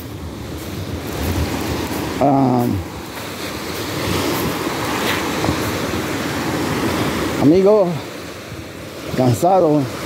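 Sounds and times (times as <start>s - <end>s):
small waves washing on beach: 0.0s - 10.0s.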